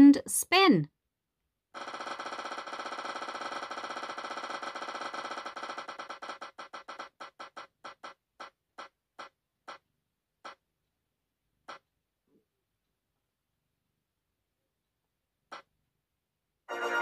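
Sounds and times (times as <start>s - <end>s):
spinner wheel electronic ticks: 1.8s - 9.8s.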